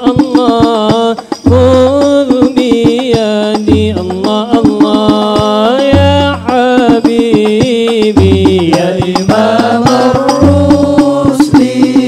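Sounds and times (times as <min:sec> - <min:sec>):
men singing devotional song: 0:00.0 - 0:12.0
steady percussion beat: 0:00.0 - 0:12.0.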